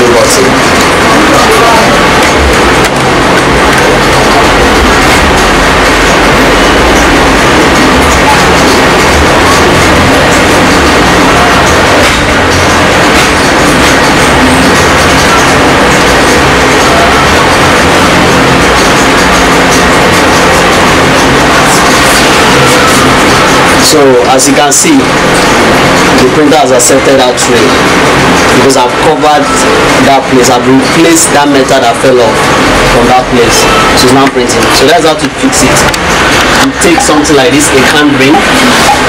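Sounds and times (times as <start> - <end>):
loud constant background noise: 0.0 - 39.0.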